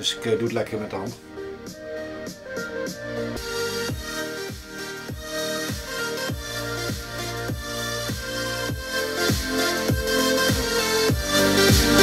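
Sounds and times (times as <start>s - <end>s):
electronic dance music over speakers: 0.6s - 12.0s
kick drum: 3.9s - 11.9s.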